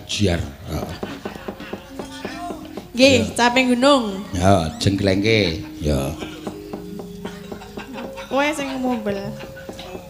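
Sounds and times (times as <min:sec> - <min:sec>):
gamelan metal keys struck: 0:02.0 - 0:10.0.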